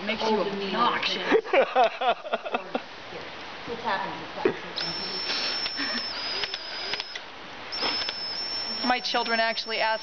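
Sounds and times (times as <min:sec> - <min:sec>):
cordless drill whining: 0:04.8 - 0:10.0.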